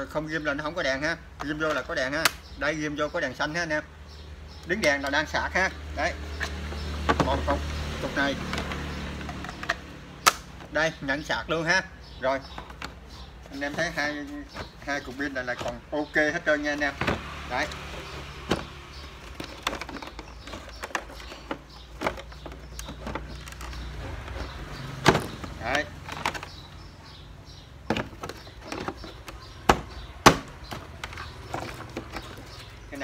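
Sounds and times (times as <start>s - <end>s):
plastic parts clicking and knocking: 0.5s - 3.8s, 4.5s - 5.7s, 6.3s - 11.3s, 12.4s - 33.0s.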